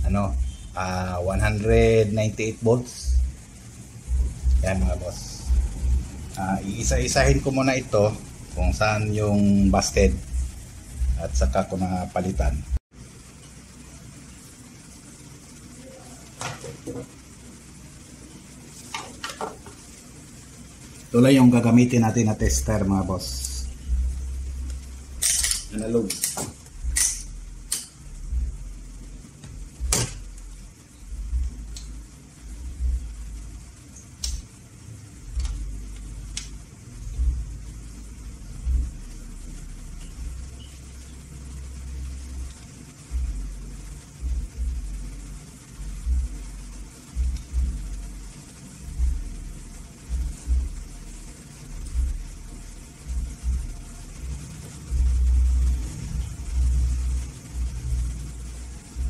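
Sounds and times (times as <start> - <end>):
low uneven rumble: 19.8 - 26.0, 34.7 - 59.0.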